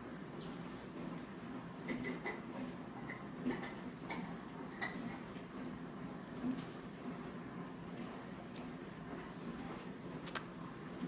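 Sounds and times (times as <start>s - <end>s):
sharp clicks: 10.2s - 10.5s.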